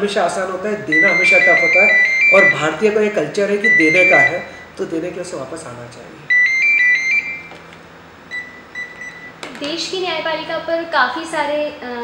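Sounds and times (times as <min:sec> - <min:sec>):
mobile phone ringtone: 0:00.9 - 0:02.8, 0:03.6 - 0:04.6, 0:06.3 - 0:07.5.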